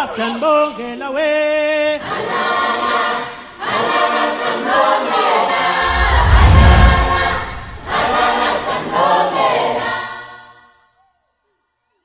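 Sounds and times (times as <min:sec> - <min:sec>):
choir singing: 0:02.0 - 0:10.7
deep boom: 0:05.8 - 0:08.8.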